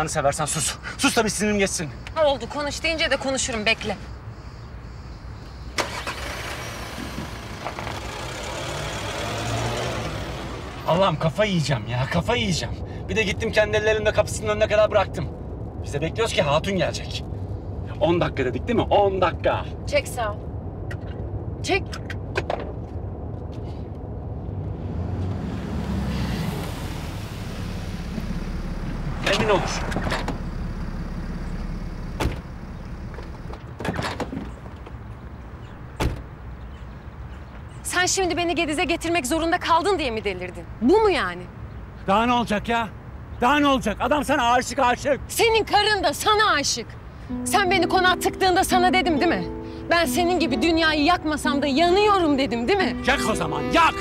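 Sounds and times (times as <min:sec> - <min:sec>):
car engine low rumble: 0:00.0 - 0:54.0
road noise: 0:00.0 - 0:54.0
car engine running: 0:20.4 - 0:33.8.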